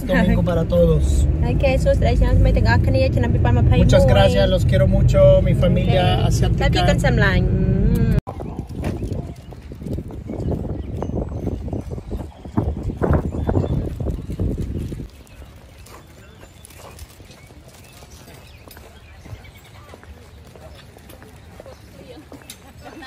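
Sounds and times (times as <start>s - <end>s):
outdoor background noise: 0.0s - 23.0s
loud low rumble: 0.9s - 8.2s
footsteps on wet pavement: 8.3s - 23.0s.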